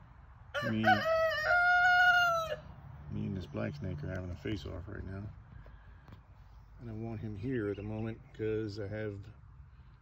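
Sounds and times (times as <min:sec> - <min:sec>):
rooster crowing: 0:00.5 - 0:02.8
man speaking: 0:00.6 - 0:01.2, 0:06.8 - 0:09.4.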